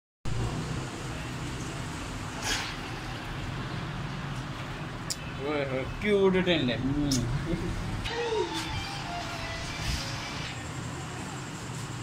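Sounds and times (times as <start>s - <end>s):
low rumble with hiss: 0.3s - 12.0s.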